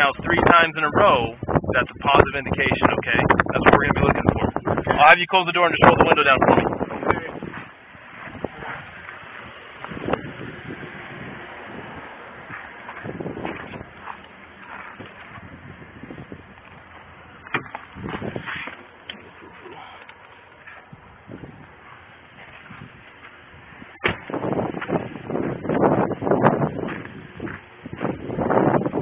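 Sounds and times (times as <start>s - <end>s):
wind on microphone: 0.0s - 20.0s, 20.7s - 29.0s
vehicle door knocks and clicks: 17.4s - 18.3s.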